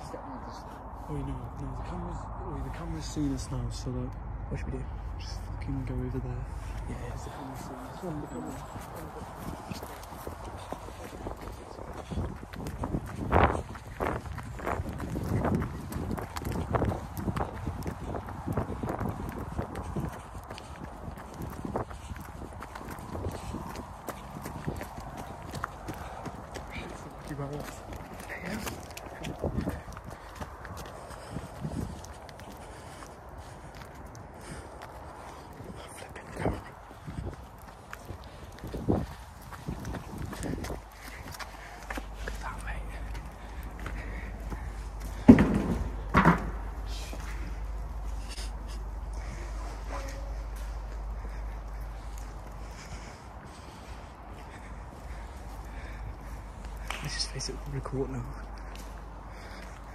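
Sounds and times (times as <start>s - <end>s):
fast footsteps on path: 0.0s - 59.9s.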